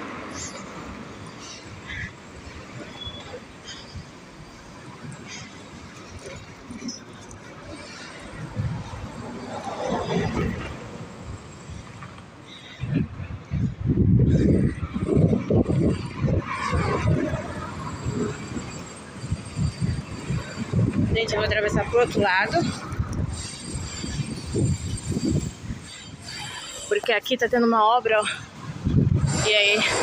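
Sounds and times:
traffic passing: 0.0s - 30.0s.

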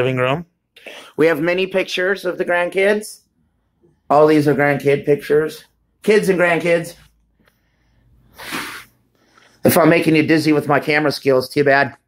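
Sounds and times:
short sharp breath: 7.3s - 9.6s.

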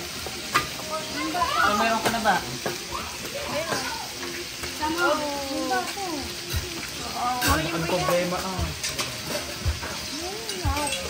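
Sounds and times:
faint voices chattering: 0.0s - 11.0s
meat sizzling on a grill: 0.0s - 11.0s.

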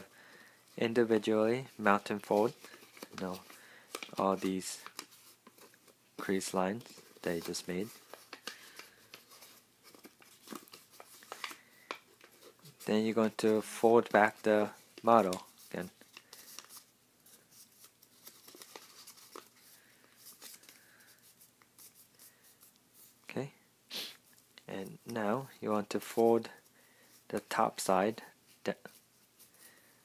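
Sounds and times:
paper crinkling: 1.6s - 23.2s.

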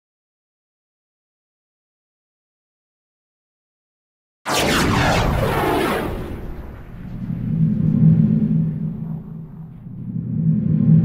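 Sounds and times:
low rumbling drone: 4.6s - 11.0s.

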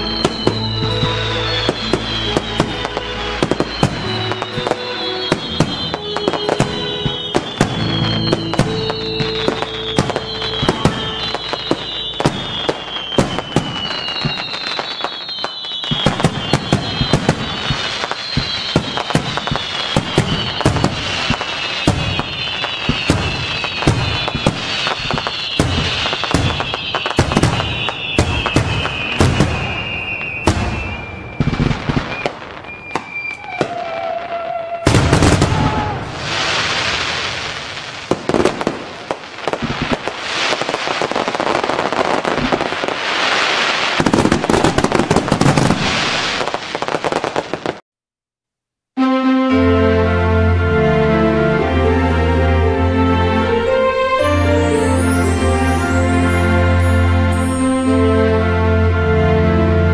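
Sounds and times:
music: 0.0s - 31.0s, 49.0s - 59.9s
high falling whistles: 0.0s - 37.8s, 53.2s - 58.4s
sharp cracks and bangs: 0.2s - 33.8s, 34.9s - 47.8s.

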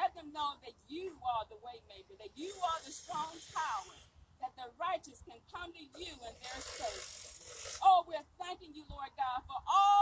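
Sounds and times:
woman speaking through loudspeaker: 0.0s - 7.0s, 7.8s - 10.0s.

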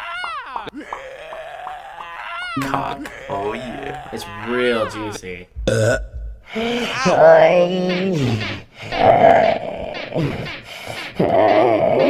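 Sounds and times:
person making bleating vocal sound: 2.6s - 5.0s, 5.6s - 7.8s.

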